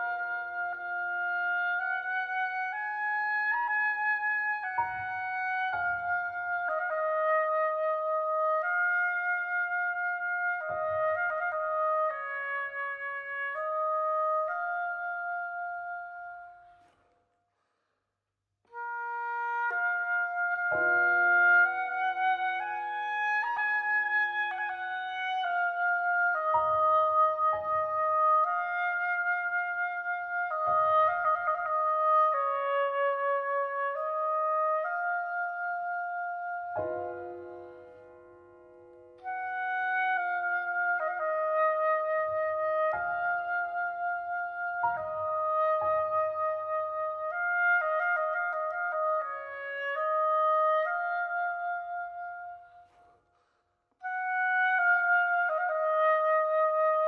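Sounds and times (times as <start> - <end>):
oboe melody: 0.0 - 17.1, 18.7 - 57.0
piano chords: 36.7 - 39.2.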